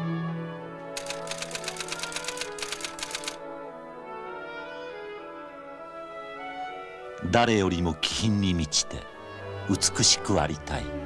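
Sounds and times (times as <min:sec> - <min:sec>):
orchestral music with brass: 0:00.0 - 0:00.9, 0:03.4 - 0:11.0
rapid sharp clicks: 0:01.0 - 0:03.4.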